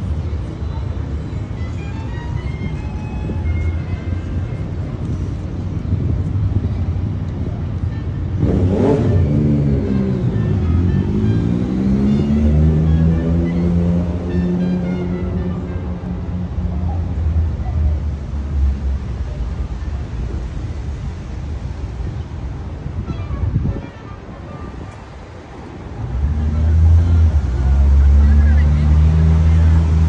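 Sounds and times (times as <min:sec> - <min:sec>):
street traffic rumble: 0:00.0 - 0:30.0
vehicle accelerating past: 0:08.4 - 0:15.5.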